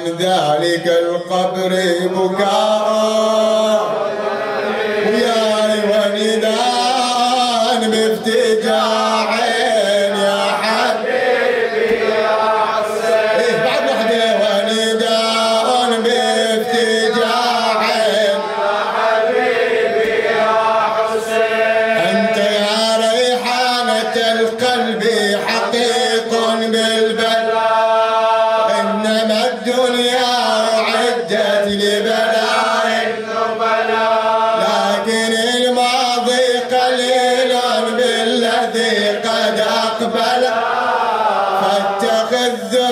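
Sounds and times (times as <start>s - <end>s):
man chanting: 0.0s - 11.3s, 12.1s - 42.9s.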